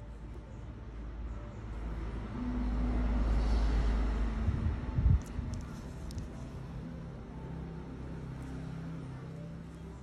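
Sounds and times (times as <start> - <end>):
passing road vehicle rumble: 1.7 - 10.0.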